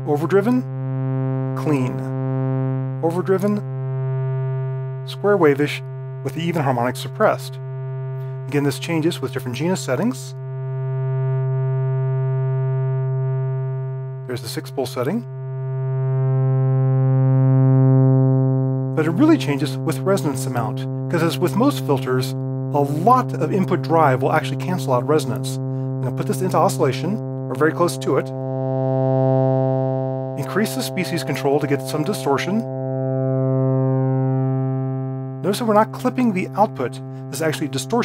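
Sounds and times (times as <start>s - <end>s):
synthesizer low sawtooth note: 0.0s - 38.0s.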